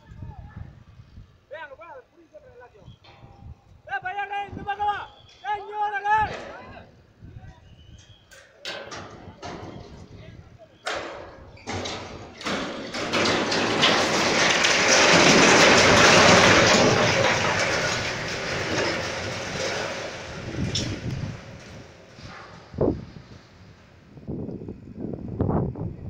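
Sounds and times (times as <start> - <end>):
metal creaks and snaps: 7.9 - 23.6
crashing and grinding metal: 8.3 - 24.2.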